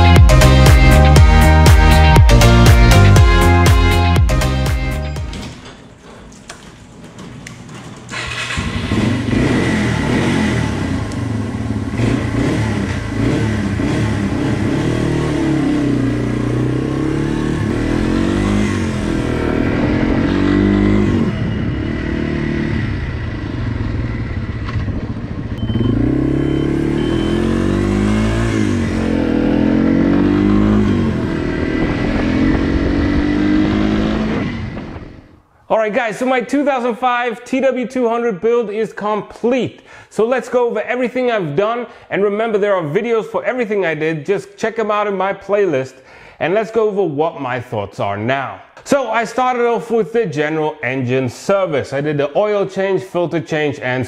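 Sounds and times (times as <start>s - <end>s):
motorcycle engine accelerating: 0.0s - 5.6s, 7.5s - 35.5s.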